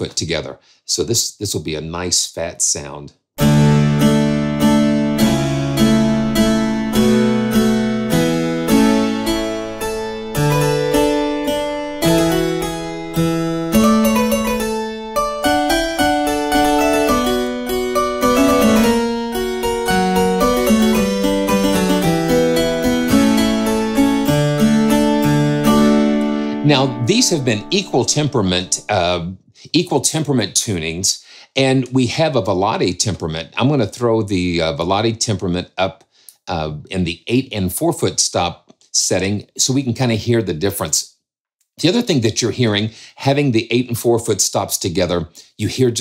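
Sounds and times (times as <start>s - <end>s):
harpsichord playing chords: 3.4s - 28.9s.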